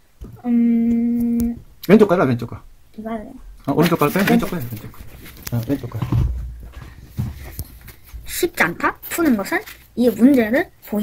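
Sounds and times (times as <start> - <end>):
soft knocks: 5.8 - 7.6.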